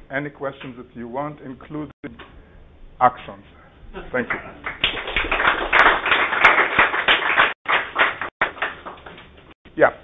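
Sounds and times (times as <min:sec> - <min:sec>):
audience applauding: 0:04.2 - 0:09.2.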